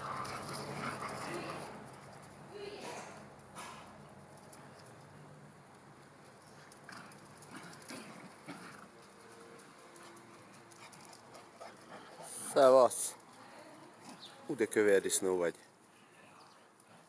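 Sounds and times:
small dogs play-fighting: 0:00.0 - 0:02.5, 0:05.9 - 0:14.5.

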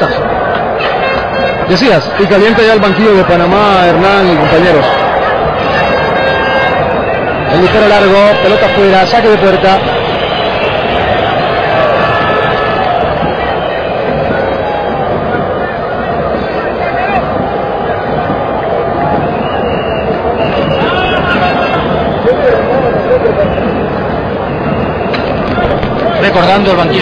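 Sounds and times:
stadium crowd din: 0:00.0 - 0:27.0.

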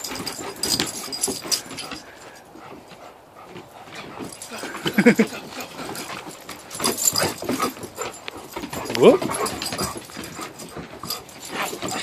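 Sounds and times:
dogs playing: 0:00.0 - 0:12.0.

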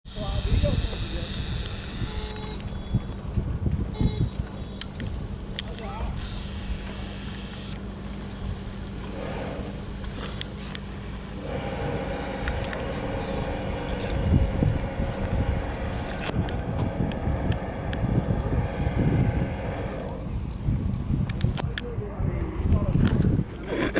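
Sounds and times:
wind on microphone: 0:00.1 - 0:07.0, 0:11.4 - 0:23.9
low mechanical hum: 0:00.1 - 0:23.9.

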